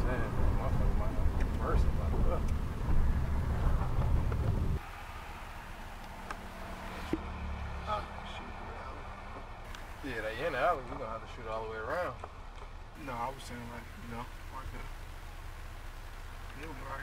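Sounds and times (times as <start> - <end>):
road rumble inside car: 0.0 - 4.8.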